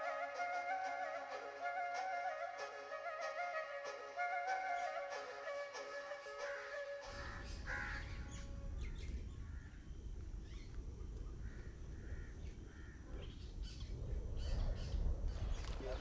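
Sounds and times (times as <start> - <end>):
flute melody: 0.0 - 9.2
birds cawing: 6.4 - 10.7, 11.4 - 13.2
wind rumble on microphone: 7.1 - 16.0.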